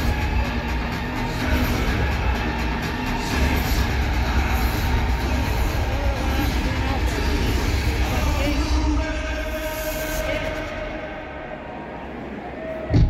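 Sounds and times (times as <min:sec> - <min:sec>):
bass-heavy music over sound system: 0:00.0 - 0:11.4
crowd voices: 0:00.0 - 0:13.0.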